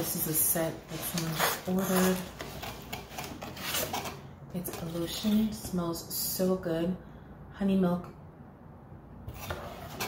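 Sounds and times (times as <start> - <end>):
rubbing and scraping: 0.9 - 5.6, 9.3 - 10.0.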